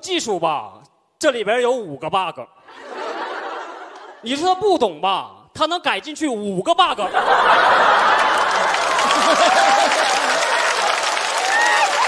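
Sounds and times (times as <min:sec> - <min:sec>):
audience applauding: 0:07.6 - 0:12.0
voices over clapping: 0:08.2 - 0:12.0.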